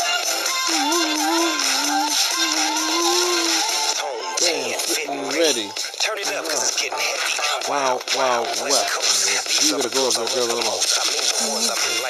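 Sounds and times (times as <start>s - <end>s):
person singing karaoke: 0.0s - 12.0s
pop backing track: 0.0s - 12.0s
person speaking: 7.6s - 12.0s.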